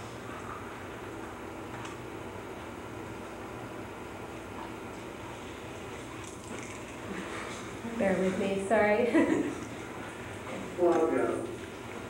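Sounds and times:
background hiss and low hum: 0.0 - 12.0.

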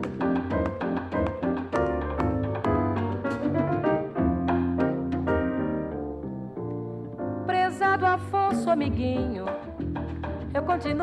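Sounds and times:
jazz piano trio: 0.0 - 11.0.

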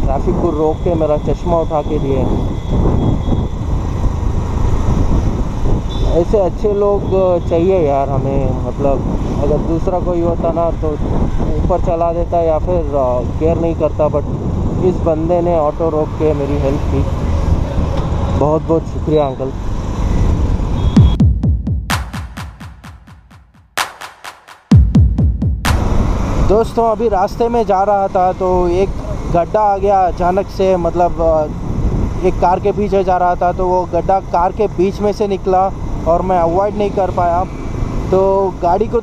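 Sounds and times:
traffic noise: 0.0 - 21.2, 25.7 - 39.0
road noise: 0.0 - 21.3, 25.6 - 39.0
wind on microphone: 2.2 - 6.1, 8.1 - 11.9, 12.6 - 15.1
motorcycle: 2.4 - 6.9, 13.2 - 21.0, 26.1 - 39.0
deep kick drum hits: 21.0 - 26.3
electronic music: 21.0 - 26.4.

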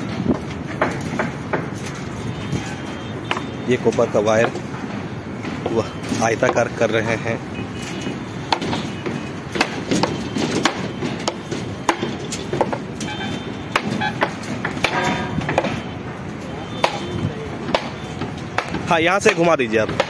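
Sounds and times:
hammering knocks and bangs: 0.0 - 20.0.

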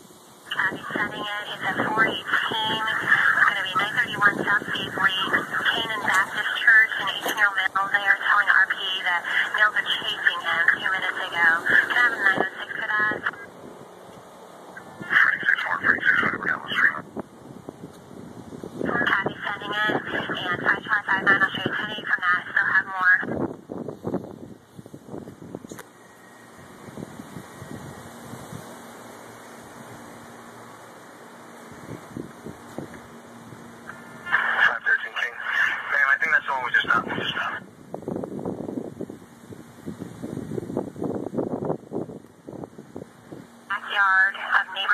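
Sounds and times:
steady background noise: 0.0 - 44.9
tinny radio voice transmissions: 0.5 - 13.5, 15.0 - 17.1, 18.9 - 23.3, 34.2 - 37.6, 43.7 - 44.9.

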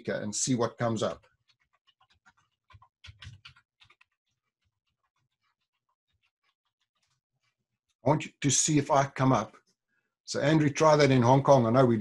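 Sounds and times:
computer keyboard typing: 1.2 - 7.1.

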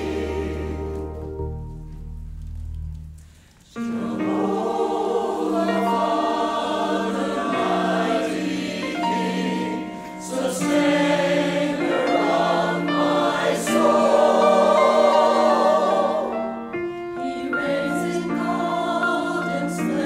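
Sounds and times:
choir singing a hymn: 0.0 - 1.7, 3.7 - 20.0.

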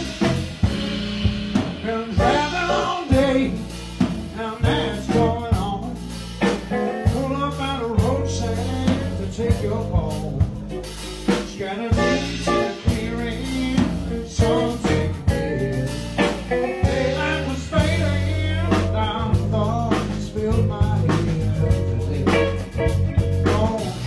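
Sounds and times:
blues band playing: 0.0 - 24.0
drums beating: 0.0 - 24.0.

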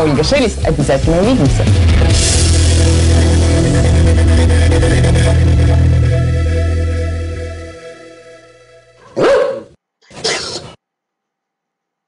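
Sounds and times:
dog barking: 9.0 - 10.6.

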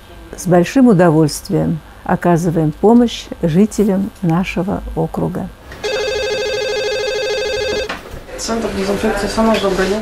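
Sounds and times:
telephone ringing: 5.8 - 8.0.

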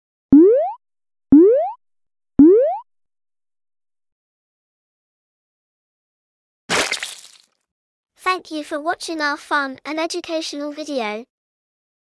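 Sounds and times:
cartoon boing sound effects: 0.4 - 1.8, 2.4 - 2.9.

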